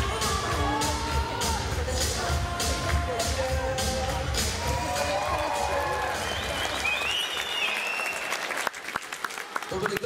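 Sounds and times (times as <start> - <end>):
dance music: 0.0 - 7.0
audience applauding and cheering: 4.2 - 10.0.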